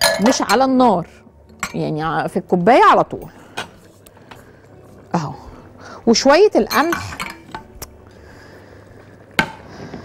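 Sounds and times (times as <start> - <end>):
metal spoon clinking on pot: 0.0 - 0.7, 6.6 - 7.7.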